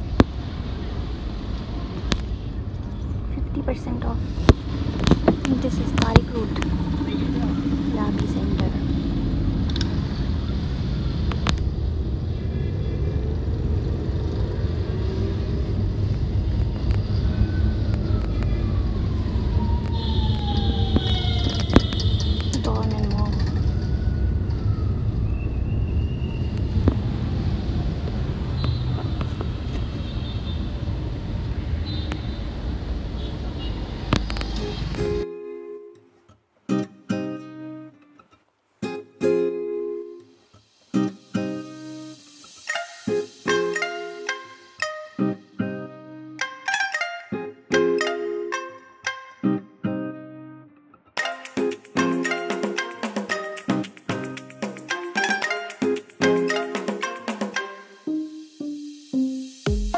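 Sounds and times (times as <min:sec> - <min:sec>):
auto-rickshaw engine rumbling: 0:00.0 - 0:35.0
high horn-like tones: 0:19.9 - 0:23.2, 0:42.6 - 0:45.4, 0:51.2 - 0:58.5.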